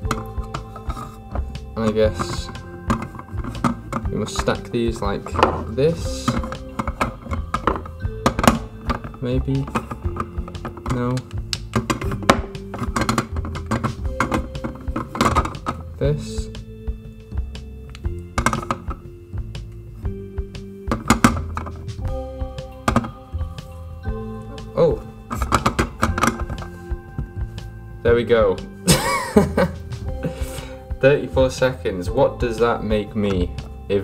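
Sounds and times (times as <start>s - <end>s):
background music: 0.0s - 34.0s.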